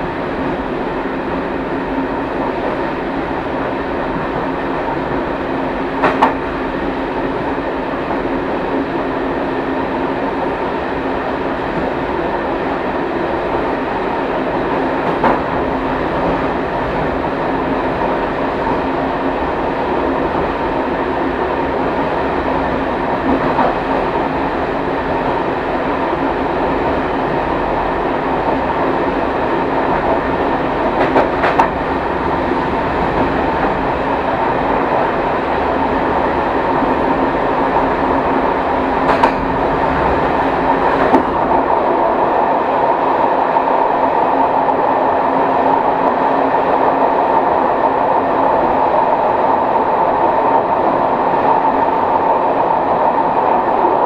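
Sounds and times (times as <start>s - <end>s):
train rumbling: 0.0s - 54.0s
train wheels clicking: 5.9s - 6.5s, 15.0s - 17.1s, 29.7s - 34.0s, 38.7s - 41.8s.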